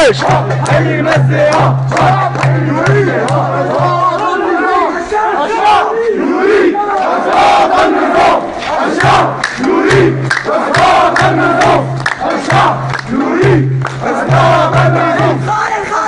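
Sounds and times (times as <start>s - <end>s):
sharp regular beats: 0.0s - 4.2s, 9.0s - 15.6s
crowd chanting slogans: 0.0s - 16.0s.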